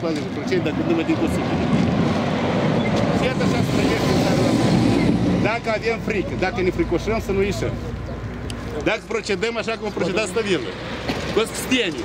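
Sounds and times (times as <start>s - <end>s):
vehicle engines rumbling: 0.0s - 12.0s.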